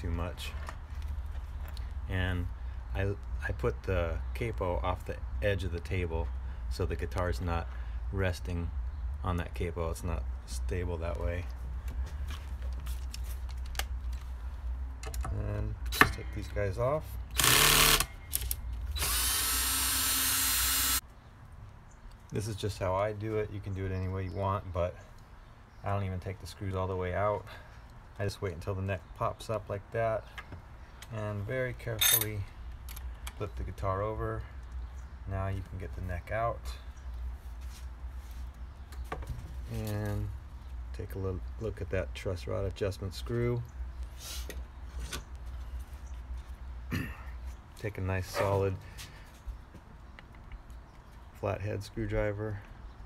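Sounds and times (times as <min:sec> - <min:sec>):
man speaking: 0:47.8 - 0:48.8.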